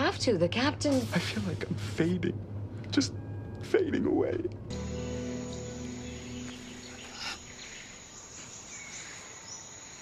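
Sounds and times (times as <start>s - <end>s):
held music chord: 4.7s - 8.0s
insects chirping: 4.7s - 10.0s
faint bird calls: 5.9s - 10.0s.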